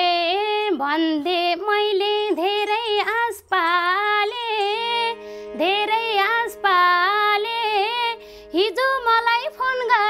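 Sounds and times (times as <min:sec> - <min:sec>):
woman singing folk song: 0:00.0 - 0:10.0.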